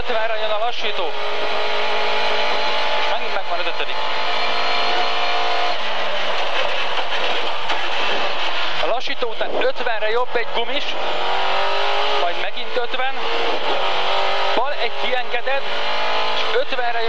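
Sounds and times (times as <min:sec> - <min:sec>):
rally car engine from inside cabin: 0:00.1 - 0:08.9, 0:10.1 - 0:17.0.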